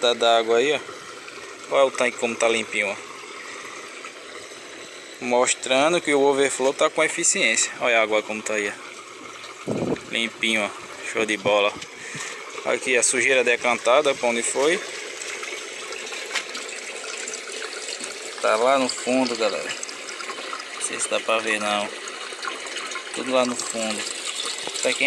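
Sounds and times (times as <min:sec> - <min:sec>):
water splashing into tank: 0:08.2 - 0:25.0.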